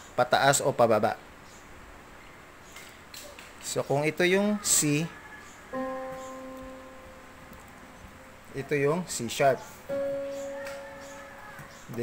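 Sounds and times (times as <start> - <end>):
digital keyboard single note: 5.8 - 7.4, 9.9 - 11.6.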